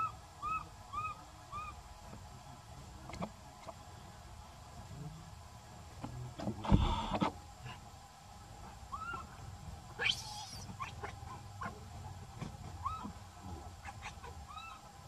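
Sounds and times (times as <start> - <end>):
baby monkey screaming: 0.0 - 1.8, 8.9 - 9.3, 10.0 - 11.2, 12.8 - 13.2, 13.8 - 14.9
monkey squeaky calls: 10.0 - 11.1, 12.8 - 13.2, 13.8 - 14.8.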